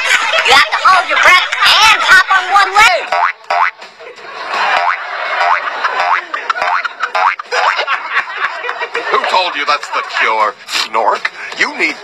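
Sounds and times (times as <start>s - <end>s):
cartoon boing twangs: 3.1s - 3.8s, 4.8s - 7.4s.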